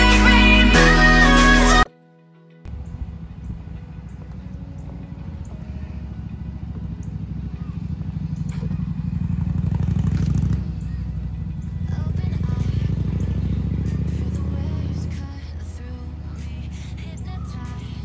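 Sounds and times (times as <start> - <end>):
motorcycle engine pulsing exhaust: 2.7 - 18.0.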